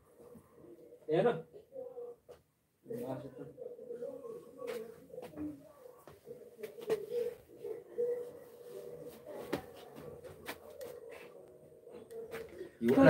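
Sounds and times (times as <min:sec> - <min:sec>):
bird cooing low: 0:00.0 - 0:12.9.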